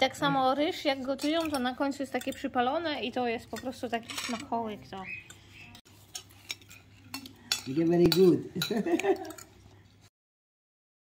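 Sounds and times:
fork scraping glass plate: 5.2s - 8.7s.

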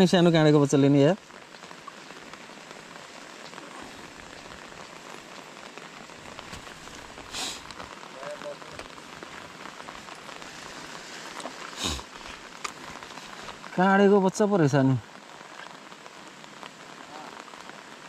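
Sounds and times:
rain falling on water: 0.0s - 18.0s.

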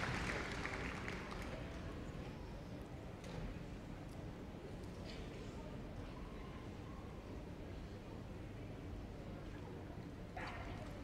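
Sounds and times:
audience applause: 0.0s - 1.5s.

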